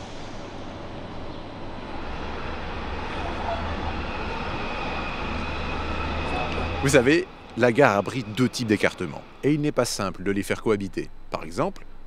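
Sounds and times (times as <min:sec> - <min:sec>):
electric train rumbling past: 0:00.0 - 0:12.0
faint steady whine: 0:00.0 - 0:12.0
railway station ambience: 0:00.0 - 0:12.0.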